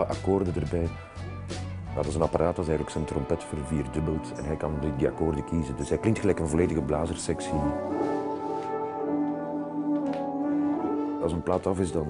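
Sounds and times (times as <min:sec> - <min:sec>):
brass sustained chords: 0:02.7 - 0:12.0.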